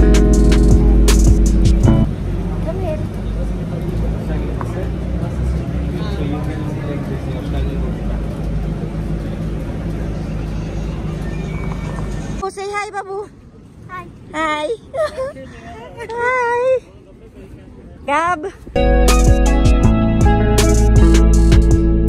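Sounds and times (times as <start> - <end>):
music: 0.0 - 2.1, 18.8 - 22.0
bus interior rumble: 0.0 - 22.0
faint passenger voices: 2.1 - 18.8.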